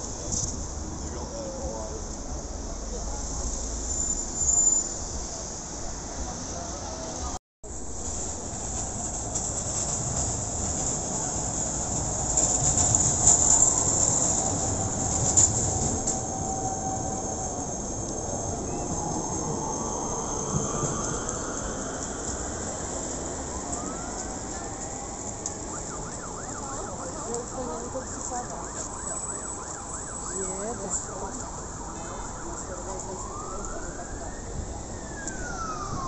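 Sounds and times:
city street traffic: 0:00.0 - 0:36.0
rising whine: 0:15.7 - 0:26.3, 0:32.6 - 0:36.0.

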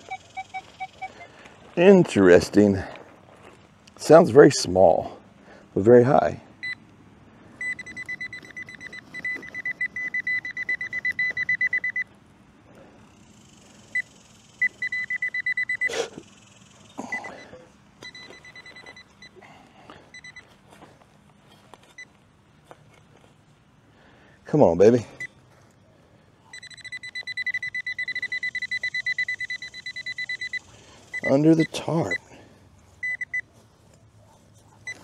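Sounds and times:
rapid high-pitched beeping: 0:00.0 - 0:01.3, 0:07.6 - 0:12.1, 0:13.5 - 0:19.4, 0:26.5 - 0:32.2, 0:33.0 - 0:33.5.

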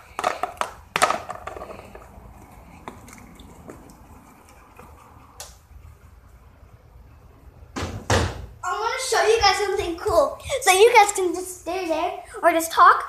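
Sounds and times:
loud knocks: 0:07.8 - 0:08.5
child's voice: 0:08.6 - 0:13.0.

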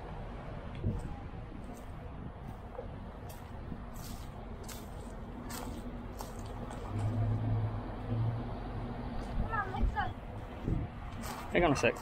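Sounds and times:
vehicle engine humming: 0:00.0 - 0:12.0
footsteps crunching on mulch: 0:03.2 - 0:06.9, 0:11.2 - 0:11.6.

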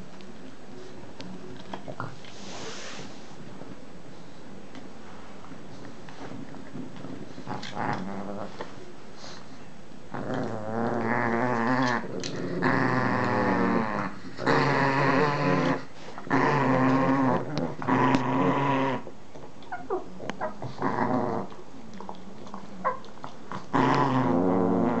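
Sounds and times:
dog growling: 0:06.8 - 0:08.7, 0:10.1 - 0:25.0.

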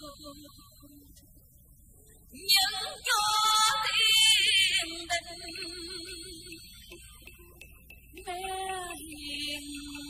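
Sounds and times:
woman singing opera: 0:00.0 - 0:01.1, 0:02.4 - 0:06.6, 0:08.2 - 0:10.0.

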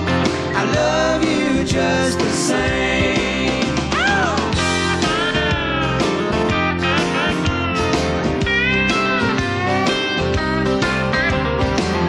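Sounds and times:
electric and acoustic guitars: 0:00.0 - 0:12.0
upright bass: 0:00.0 - 0:12.0
steel guitar sliding notes: 0:04.4 - 0:12.0.

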